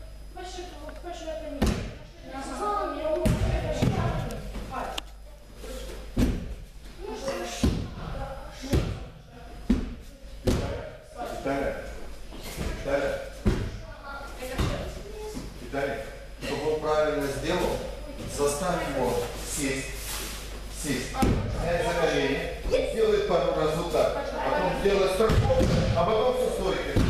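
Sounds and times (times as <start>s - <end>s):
bodies thudding onto mats: 6.1s - 6.7s.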